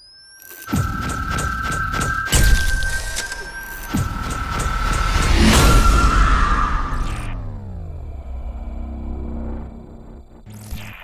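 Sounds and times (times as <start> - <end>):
low rumble: 4.5 - 10.5.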